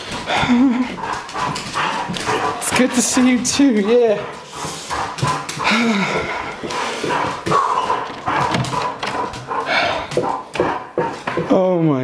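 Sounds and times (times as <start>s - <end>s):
dog making excited noises: 0.0s - 11.5s.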